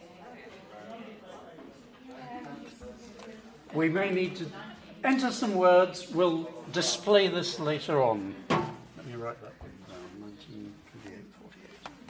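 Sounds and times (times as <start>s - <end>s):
faint voices murmuring: 0.0s - 12.0s.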